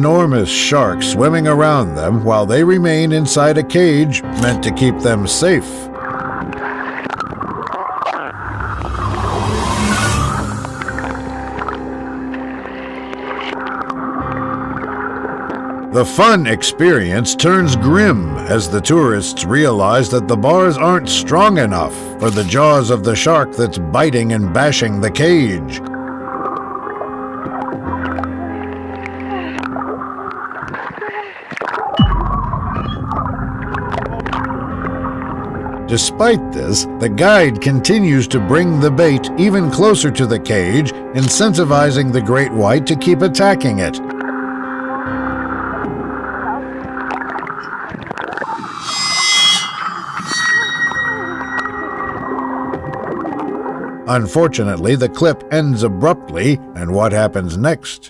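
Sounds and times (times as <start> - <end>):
droning background music: 0.0 - 30.9, 32.0 - 58.0
underwater churning water and bubbles: 6.0 - 9.2, 25.8 - 35.9, 44.1 - 48.7, 51.7 - 54.1
deep bass note sweeping down: 8.3 - 12.4, 32.0 - 37.6.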